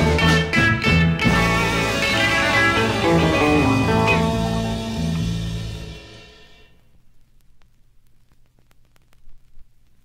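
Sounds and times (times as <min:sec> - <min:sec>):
electric guitar chord: 0:00.0 - 0:06.4
vinyl record surface noise: 0:00.0 - 0:10.0.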